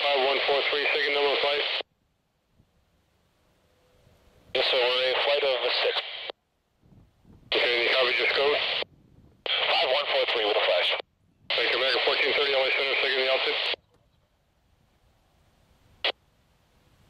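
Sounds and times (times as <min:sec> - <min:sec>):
radio voice transmissions: 0:00.0 - 0:01.9, 0:04.5 - 0:06.4, 0:07.5 - 0:13.9
faint radio hiss: 0:00.0 - 0:17.0.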